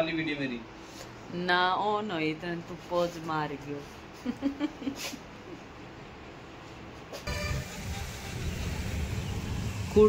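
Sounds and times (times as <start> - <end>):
road traffic rumble: 7.0 - 10.0
music: 7.3 - 10.0.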